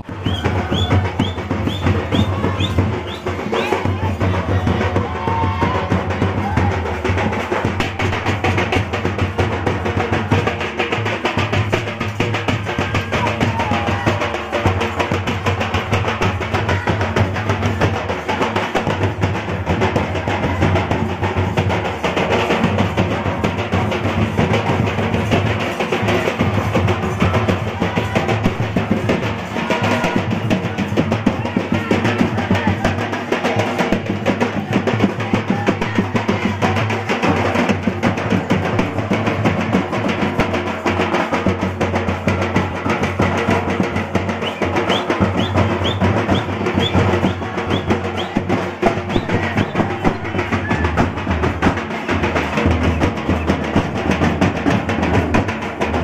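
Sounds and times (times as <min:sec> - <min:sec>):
folk drums dance rhythm: 0:00.0 - 0:56.0.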